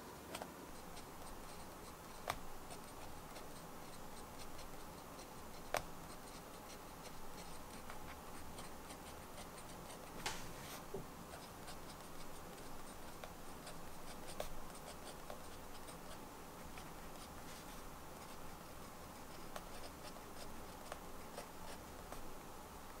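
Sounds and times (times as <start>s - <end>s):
pen nib scratching on paper: 0.3s - 10.2s, 11.3s - 22.3s.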